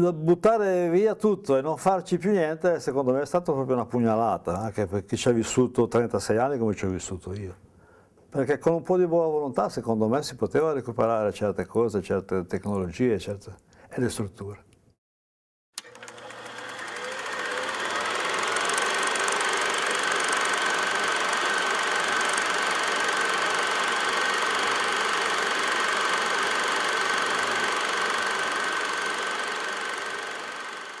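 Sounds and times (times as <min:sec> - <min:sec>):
machine running with high whine: 0:15.8 - 0:31.0.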